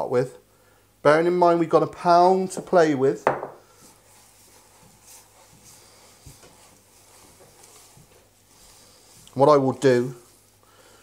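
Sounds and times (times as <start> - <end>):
hands kneading meat squelching: 3.8 - 10.9.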